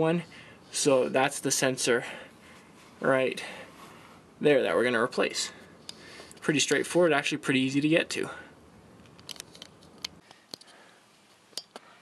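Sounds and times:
camera handling clicks: 9.0s - 10.7s.

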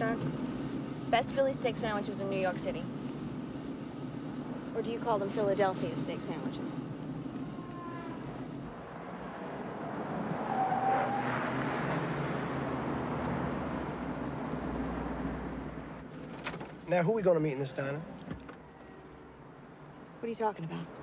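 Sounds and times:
car driving past: 7.5s - 16.0s.

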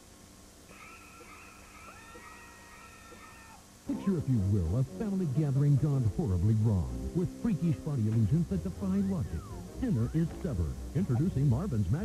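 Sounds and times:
high-pitched screams: 0.7s - 3.6s
narration: 3.9s - 12.0s.

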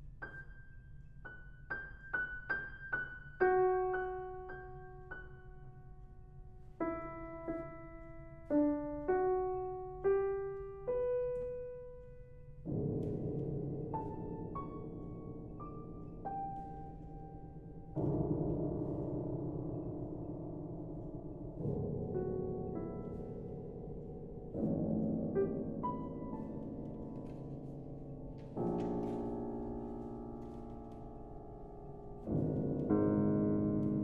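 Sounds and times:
grand piano played slowly: 0.0s - 34.0s.

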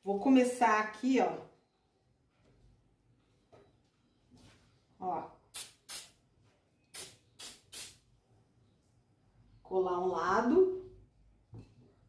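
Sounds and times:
aerosol can hissing sprays: 5.5s - 6.2s, 7.0s - 8.0s.

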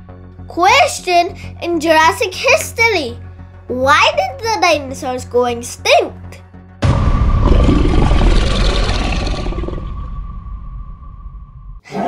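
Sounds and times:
deep rumble with rushing noise: 6.8s - 11.8s.

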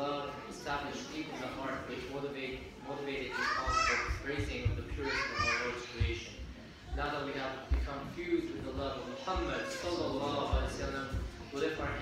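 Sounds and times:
man reading aloud: 0.0s - 12.0s
child speaking: 3.3s - 6.0s.

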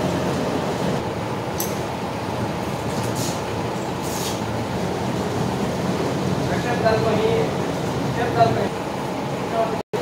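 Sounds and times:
low mechanical rumble: 0.0s - 10.0s.

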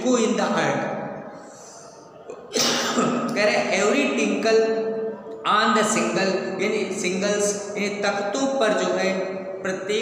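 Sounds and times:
man sneezing: 2.5s - 3.2s.

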